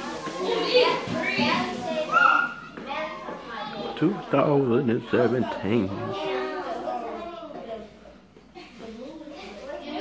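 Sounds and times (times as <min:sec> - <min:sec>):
children calling and chattering: 0:00.0 - 0:10.0.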